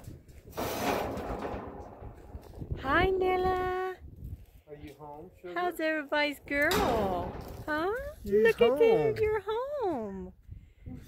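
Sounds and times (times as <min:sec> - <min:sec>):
woman saying hi: 0:02.8 - 0:04.0, 0:07.7 - 0:10.3.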